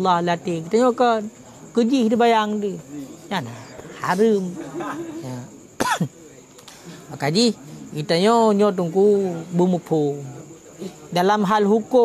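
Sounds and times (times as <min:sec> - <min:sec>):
man coughing: 0:05.8 - 0:06.1.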